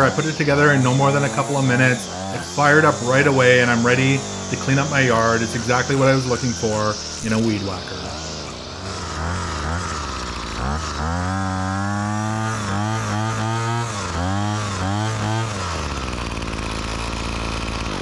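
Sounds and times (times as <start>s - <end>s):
string trimmer engine revving: 0.0s - 18.0s.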